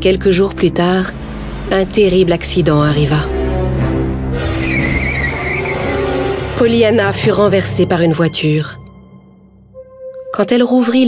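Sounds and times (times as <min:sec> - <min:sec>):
car tyres screeching: 0:01.1 - 0:08.0.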